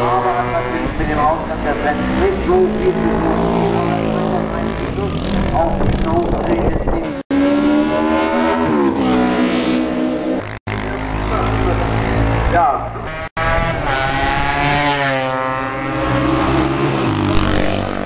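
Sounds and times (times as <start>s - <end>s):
racing motorcycles passing: 0.0s - 18.0s.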